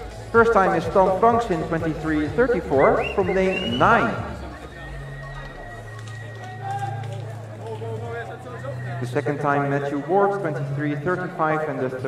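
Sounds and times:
distant indistinct voices: 0:00.0 - 0:12.0.

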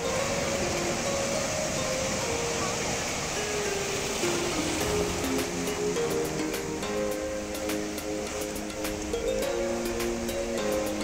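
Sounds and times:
small waves breaking on shore: 0:00.0 - 0:11.0.

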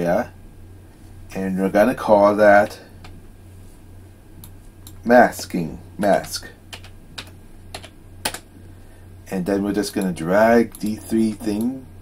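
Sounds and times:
computer keyboard keys clicking: 0:06.7 - 0:08.4.

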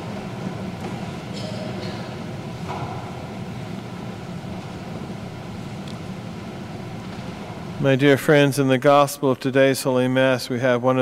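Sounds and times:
low hum of room noise: 0:00.0 - 0:11.0
man's voice: 0:07.8 - 0:11.0.

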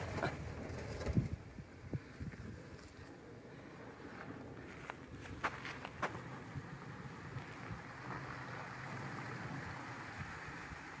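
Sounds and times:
engine running at low revs: 0:03.2 - 0:11.0.

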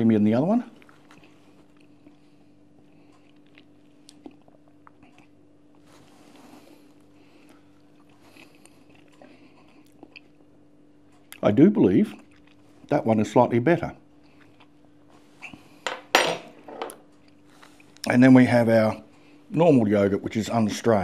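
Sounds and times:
man eating mouth sounds: 0:00.8 - 0:11.4, 0:12.1 - 0:12.9.

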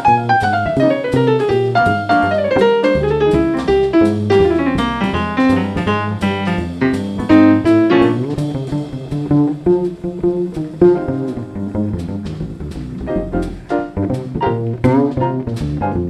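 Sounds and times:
jazz piano solo: 0:00.0 - 0:16.0
plucked double bass: 0:00.0 - 0:16.0.

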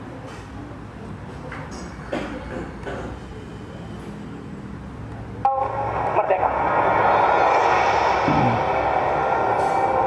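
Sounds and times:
loud pitched multi-tone sound: 0:05.4 - 0:10.0.

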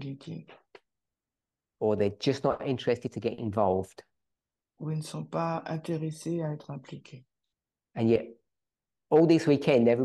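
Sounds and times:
man speaking: 0:04.8 - 0:07.2.

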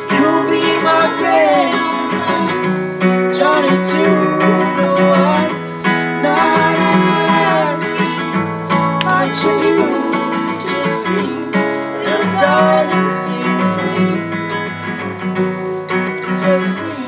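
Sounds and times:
man and woman singing duet: 0:00.0 - 0:15.0, 0:16.1 - 0:17.0
acoustic guitar strumming: 0:00.0 - 0:17.0.

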